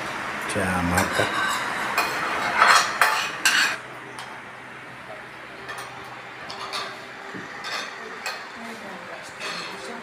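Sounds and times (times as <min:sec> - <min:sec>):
spoons scraping plates: 0:00.9 - 0:03.8, 0:09.2 - 0:10.0.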